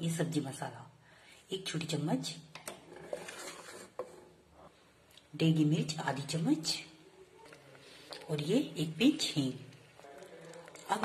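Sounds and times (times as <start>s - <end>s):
spatula scraping paste in pot: 2.8s - 4.4s, 9.9s - 11.0s.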